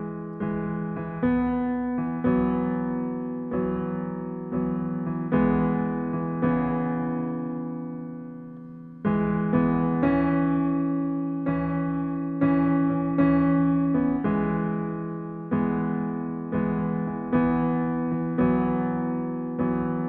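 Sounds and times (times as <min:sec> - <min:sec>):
slow keyboard melody: 0:00.0 - 0:20.0.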